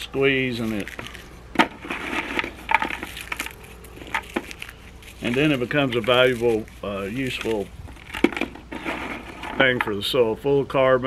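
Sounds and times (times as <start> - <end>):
charcoal crackling and crunching: 0.0 - 10.1.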